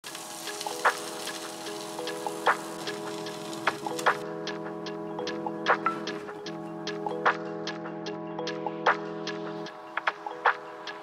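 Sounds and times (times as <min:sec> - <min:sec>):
sausage sizzling in oil: 0:00.0 - 0:04.2
background music with percussive hits: 0:00.1 - 0:11.0.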